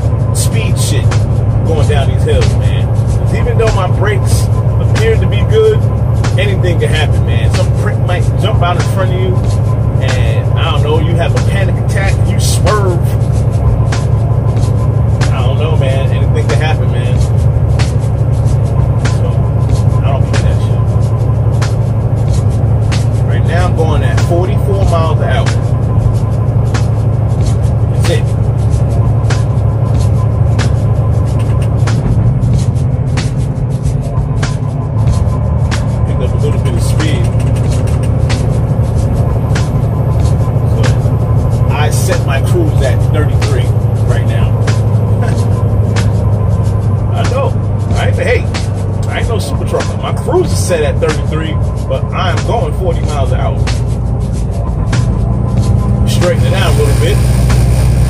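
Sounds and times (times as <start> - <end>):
truck engine drone: 0.0 - 58.0
person singing with music: 27.6 - 46.2.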